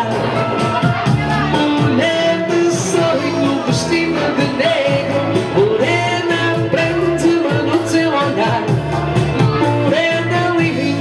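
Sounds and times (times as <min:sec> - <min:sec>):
karaoke backing track: 0:00.0 - 0:11.0
man singing into a microphone: 0:00.0 - 0:11.0.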